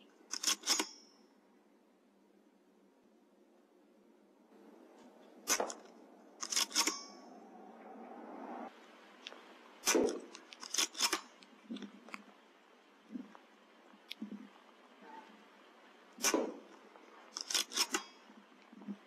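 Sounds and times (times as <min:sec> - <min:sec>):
sharp metallic clicks: 0:00.3 - 0:01.1, 0:05.5 - 0:07.4, 0:09.2 - 0:12.2, 0:17.3 - 0:18.2
silenced air rifle shots: 0:05.4 - 0:07.4, 0:09.8 - 0:11.4, 0:16.2 - 0:18.2.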